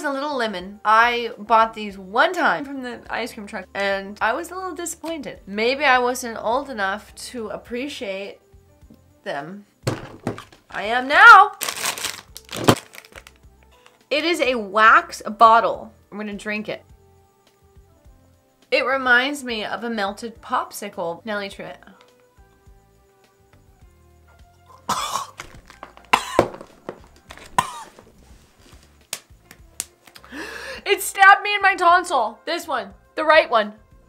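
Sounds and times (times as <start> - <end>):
plastic candy bag crinkling: 10.0 - 14.0, 25.4 - 28.1
sharp snap of bag tearing: 11.6 - 13.4, 25.4 - 26.1, 29.0 - 30.3
woman coughing hard: 24.9 - 25.5, 26.1 - 26.6, 27.6 - 28.0.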